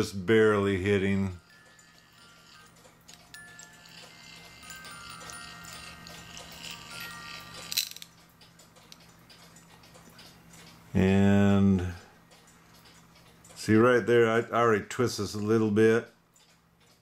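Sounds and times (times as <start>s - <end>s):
music box plucked notes: 1.4s - 8.1s.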